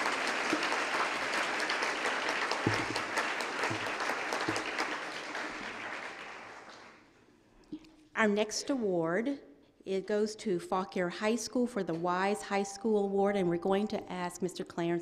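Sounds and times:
audience applauding: 0.0s - 7.0s.

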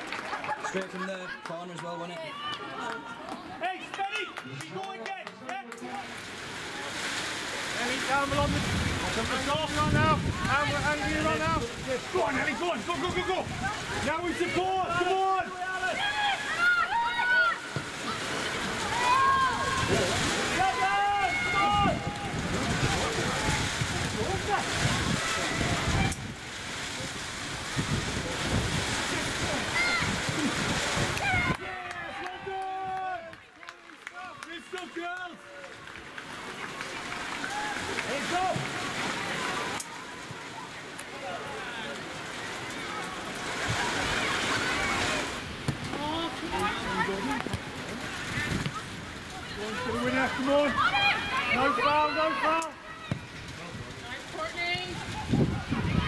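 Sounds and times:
wind buffeting microphone: 8.2s - 12.3s, 21.3s - 31.6s, 45.4s - 49.9s, 54.8s - 56.0s
people shouting: 12.4s - 26.2s, 29.4s - 30.6s, 31.2s - 33.3s, 49.5s - 53.1s.

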